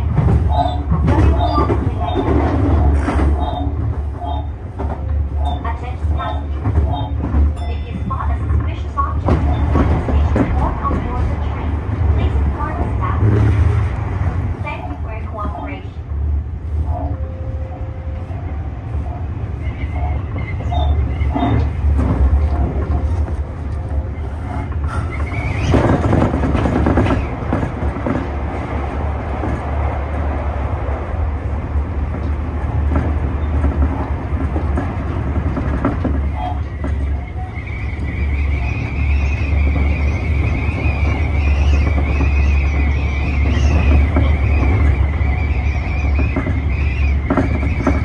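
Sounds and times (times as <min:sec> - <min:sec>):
train wheels and motors rumbling: 0:00.0 - 0:48.0.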